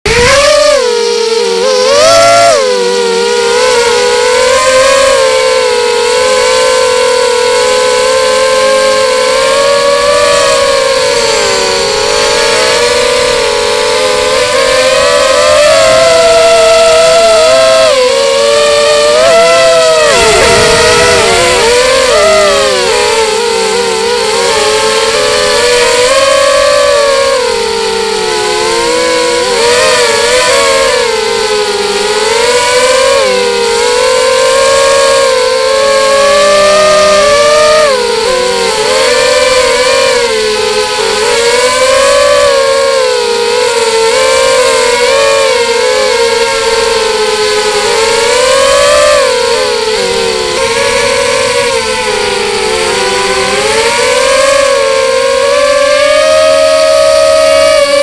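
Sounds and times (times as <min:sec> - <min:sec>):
quadcopter motors whining: 0:00.0 - 0:58.0.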